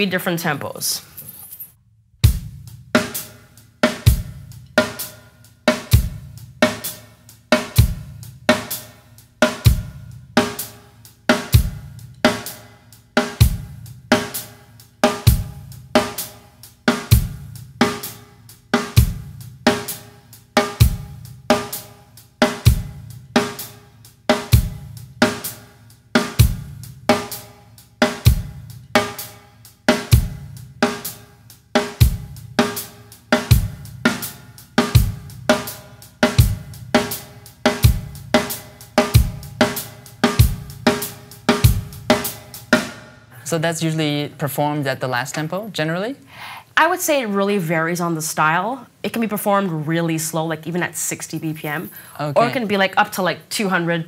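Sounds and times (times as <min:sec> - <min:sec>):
bass drum: 0:02.2 - 0:03.2, 0:04.0 - 0:05.0, 0:05.8 - 0:06.8, 0:07.6 - 0:08.7, 0:09.5 - 0:10.6, 0:11.5 - 0:12.1, 0:13.4 - 0:14.2, 0:15.2 - 0:16.1, 0:17.1 - 0:18.0, 0:19.0 - 0:19.9, 0:20.7 - 0:21.4, 0:22.6 - 0:23.5, 0:24.4 - 0:25.4, 0:26.3 - 0:27.3, 0:28.1 - 0:29.1, 0:30.1 - 0:30.9, 0:32.0 - 0:32.7, 0:33.4 - 0:34.2, 0:34.8 - 0:42.9, 0:52.4 - 0:52.6.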